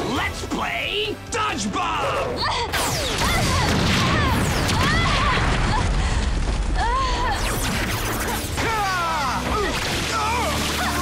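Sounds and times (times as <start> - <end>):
pained shouts and yelps: 8.6 - 11.0.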